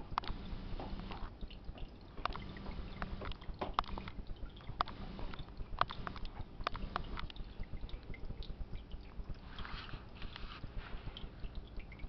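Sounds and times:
steady low hum: 0:00.0 - 0:12.0
sharp clicks: 0:01.8 - 0:07.4.

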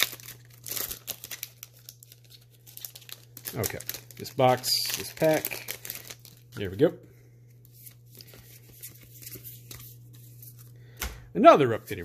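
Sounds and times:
trading cards rustling and ticking: 0:00.0 - 0:06.7, 0:07.6 - 0:11.1
steady low hum: 0:01.6 - 0:12.0.

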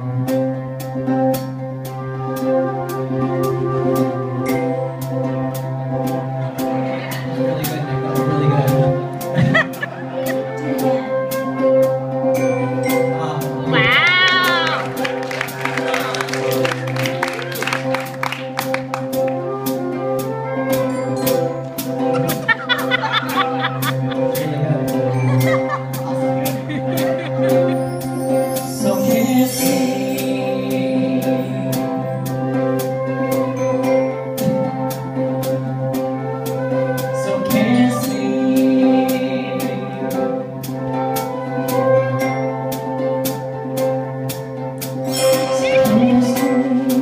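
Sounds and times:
band holding chords: 0:00.0 - 0:47.0
ukulele chords: 0:20.9 - 0:33.2, 0:45.0 - 0:47.0
sharp percussion hits: 0:45.0 - 0:47.0.

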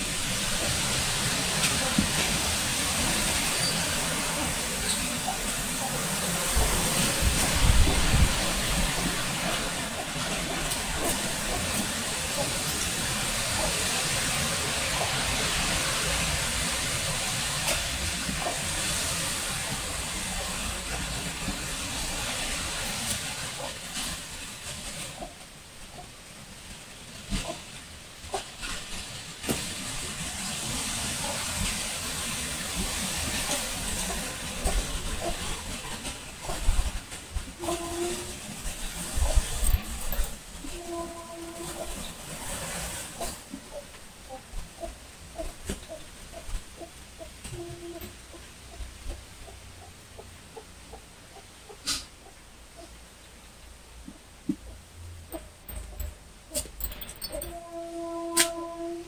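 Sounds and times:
rushing background hiss: 0:00.0 - 0:59.0.

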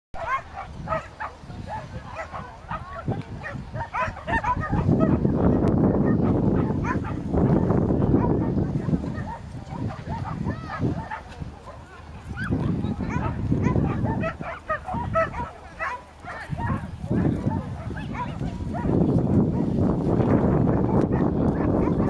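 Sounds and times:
dog barking: 0:00.2 - 0:19.7, 0:20.8 - 0:22.0
people talking: 0:00.9 - 0:19.3.

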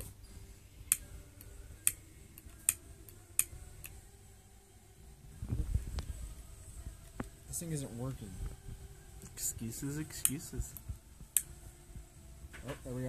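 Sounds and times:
lighter trigger clicking: 0:00.9 - 0:04.0, 0:10.2 - 0:11.5.

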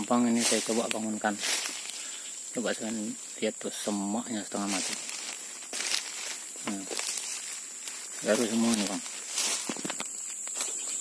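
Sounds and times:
steady high hiss: 0:00.0 - 0:11.0.

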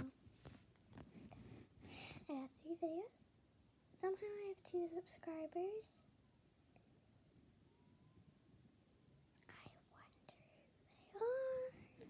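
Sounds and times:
girl whispering: 0:09.4 - 0:12.0.

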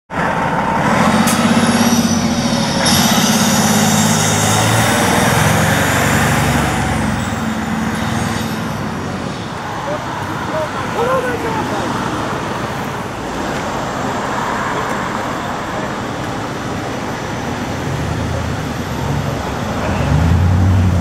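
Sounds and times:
diesel engine running: 0:00.1 - 0:21.0.

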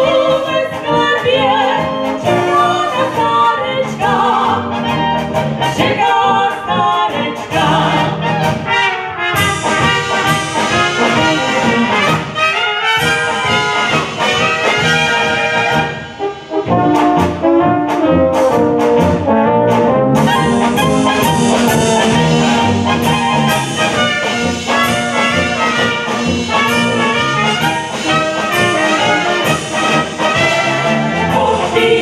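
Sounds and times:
brass band playing: 0:00.0 - 0:32.0.

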